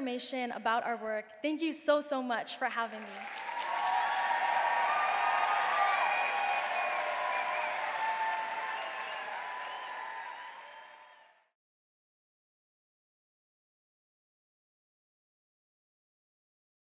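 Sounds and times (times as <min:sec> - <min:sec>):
audience applauding: 0:02.8 - 0:11.5.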